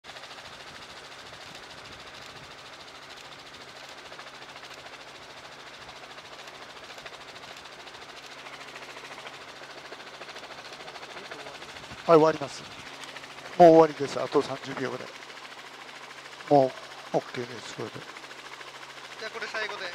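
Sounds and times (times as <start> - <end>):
helicopter rotor and engine drone: 0.0 - 19.9.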